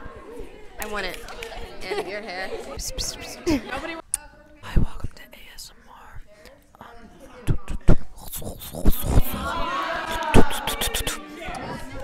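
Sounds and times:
girl whispering breathy mouth noise: 7.5 - 11.3.

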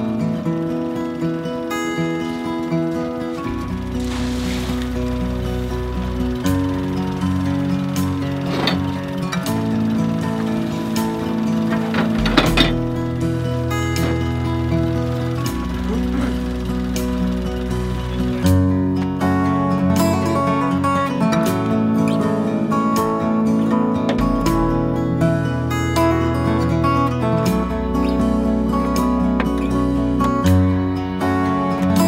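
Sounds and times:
slow held chords music: 0.0 - 32.0.

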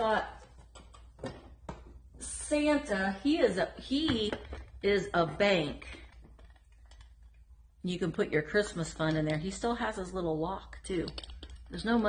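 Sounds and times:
woman speaking: 0.0 - 0.5, 2.2 - 6.1, 7.8 - 12.0.

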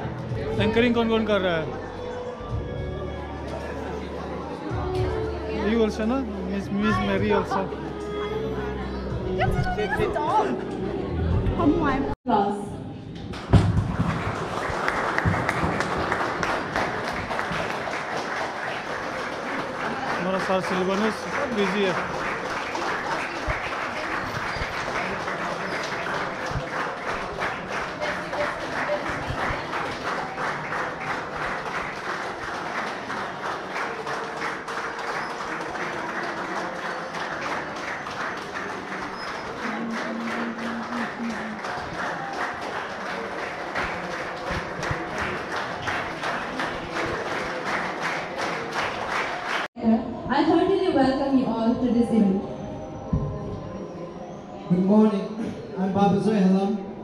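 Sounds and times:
audience clapping in time: 13.3 - 49.7.

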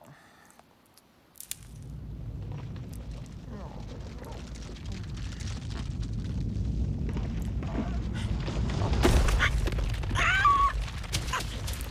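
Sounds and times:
sharp crack: 1.4 - 6.4
deep boulder rumble: 1.5 - 11.9.

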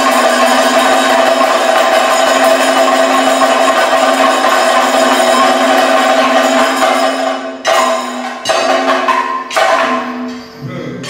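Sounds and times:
steady ringing tone: 0.0 - 10.5.

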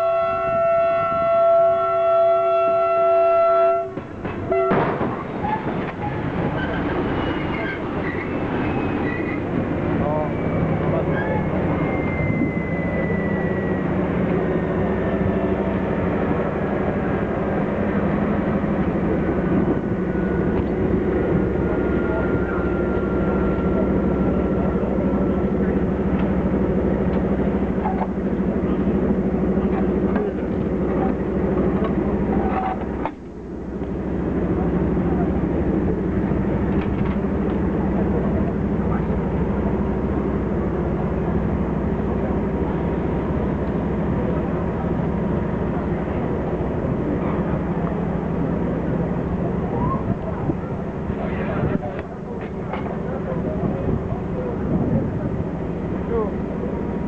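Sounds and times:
diesel locomotive engine idling: 0.0 - 57.0
crowd chatter: 6.3 - 57.0.

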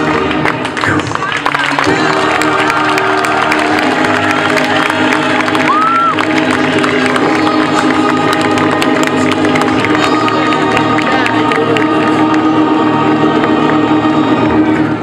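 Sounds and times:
crowd cheering and applauding: 0.0 - 14.7
background music: 0.0 - 15.0.

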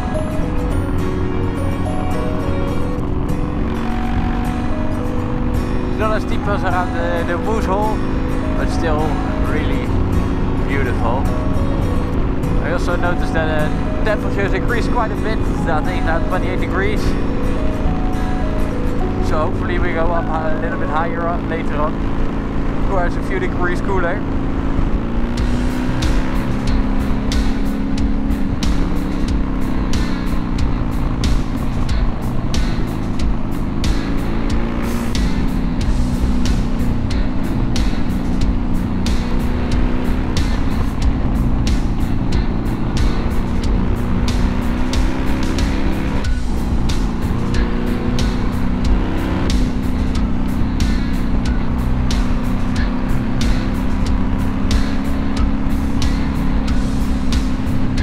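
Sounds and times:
motorcycle engine running: 0.0 - 58.0
music with steady beat: 0.0 - 58.0.

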